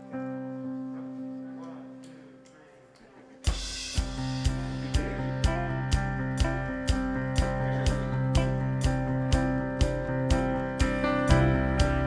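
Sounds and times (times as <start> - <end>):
band playing worship song: 3.5 - 12.0
held keyboard chord: 3.5 - 12.0
kick drum beating: 3.5 - 12.0.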